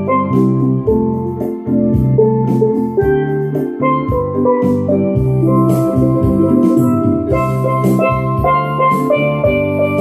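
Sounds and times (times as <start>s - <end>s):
drum beats: 0.0s - 10.0s
steel pans melody: 0.0s - 10.0s
sustained bass line: 0.0s - 10.0s.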